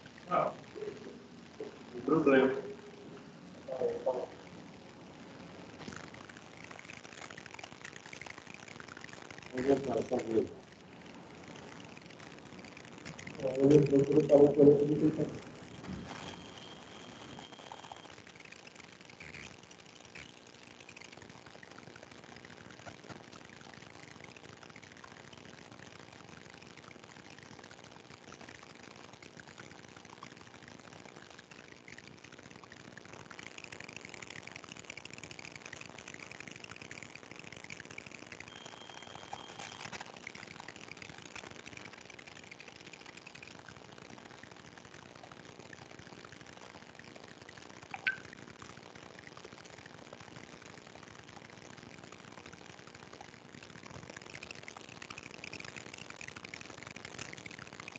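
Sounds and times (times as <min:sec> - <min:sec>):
faint high-pitched noise: 0:00.0 - 0:29.6, 0:30.3 - 0:44.1
low hum: 0:10.5 - 0:18.1.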